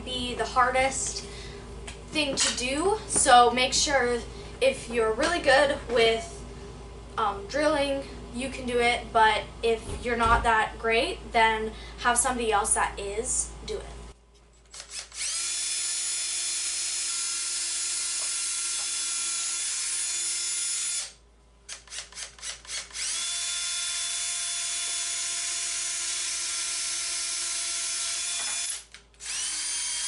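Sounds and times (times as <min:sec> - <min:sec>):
cordless drill boring wood: 0:14.7 - 0:30.0.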